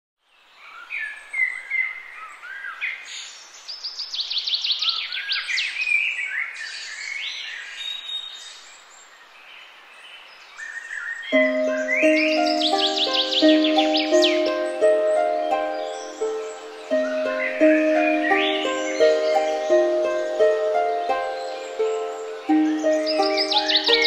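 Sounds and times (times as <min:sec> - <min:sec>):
birds singing and chirping: 0:00.5 - 0:24.0
faint background hiss: 0:06.7 - 0:24.0
soft sustained music: 0:11.3 - 0:24.0.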